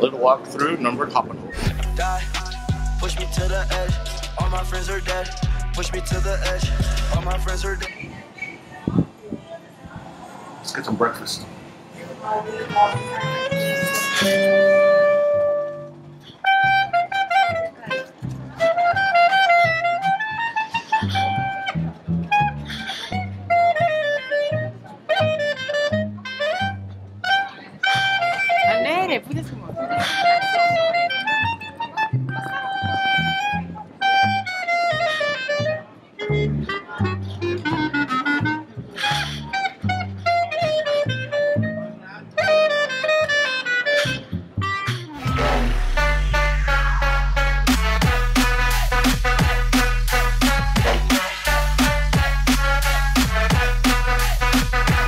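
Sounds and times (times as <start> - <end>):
plucked double bass: 1.6 - 7.8, 21.1 - 22.6, 44.2 - 55.0
clarinet melody: 12.3 - 55.0.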